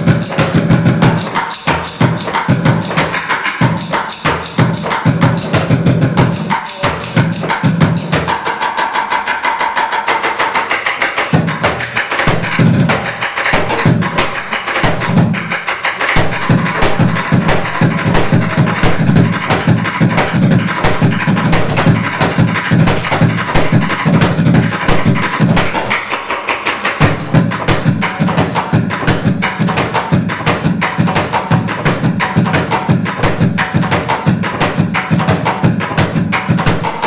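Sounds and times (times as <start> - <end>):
deep thumps of bucket drums: 11.3 - 26.1, 26.9 - 37.0.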